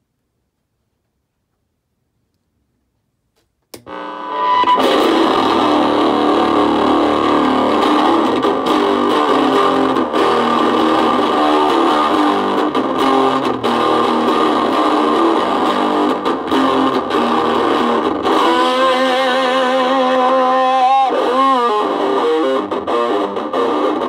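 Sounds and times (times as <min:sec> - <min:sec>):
electric guitar through amp: 0:03.8 - 0:24.0.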